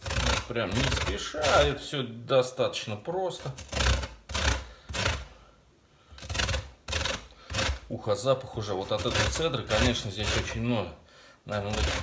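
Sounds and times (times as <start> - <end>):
orange scraping on grater: 0.0 - 1.9, 3.3 - 5.4, 6.1 - 10.9, 11.5 - 12.0.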